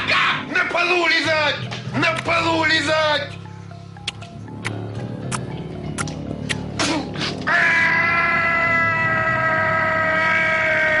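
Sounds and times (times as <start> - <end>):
man's loud long cry: 7.5 - 11.0.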